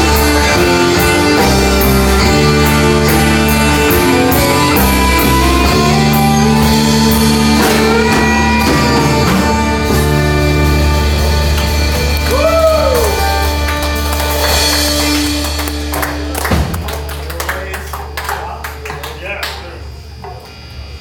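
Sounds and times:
live band holding a chord: 0.0s - 18.9s.

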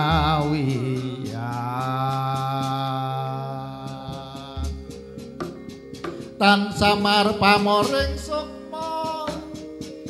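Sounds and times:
man singing long chanted note: 0.0s - 5.1s
gamelan accompaniment: 0.0s - 10.0s.

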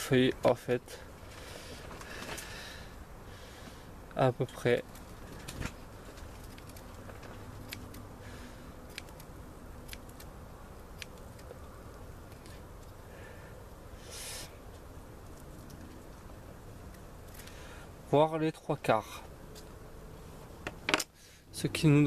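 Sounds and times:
scissors snipping leaves: 6.2s - 8.1s, 8.8s - 11.6s.

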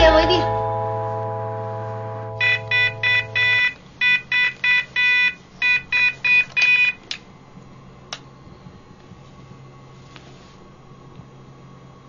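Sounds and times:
held music chord: 0.0s - 3.8s
alarm clock beeping: 2.3s - 7.0s.

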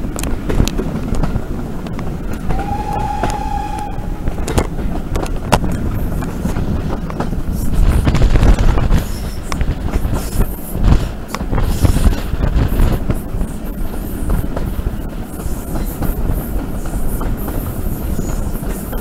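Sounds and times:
rail joint clicks: 0.0s - 19.0s
train rumble and rushing air: 0.0s - 19.0s
steam locomotive whistle: 2.5s - 4.2s.

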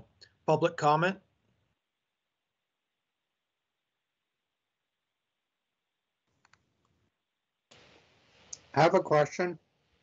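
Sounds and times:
faint clicks: 6.2s - 7.0s.

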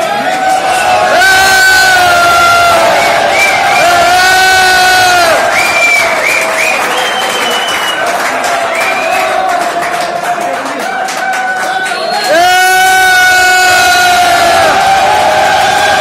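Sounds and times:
crowd cheering and shouting: 0.0s - 16.0s
long loud held cries: 0.3s - 5.9s, 11.4s - 16.0s.

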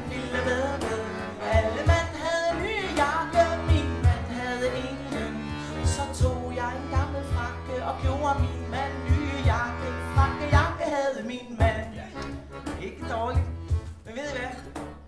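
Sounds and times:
bass clarinet: 0.0s - 10.9s, 12.0s - 15.0s
accordion chords: 0.0s - 15.0s
cajon thumps: 3.0s - 4.4s, 5.1s - 10.8s, 11.6s - 14.1s.

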